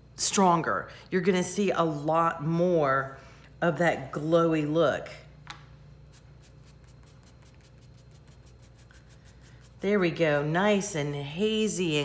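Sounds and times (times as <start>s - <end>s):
fingertips rubbing pastel on paper: 6.1s - 10.5s.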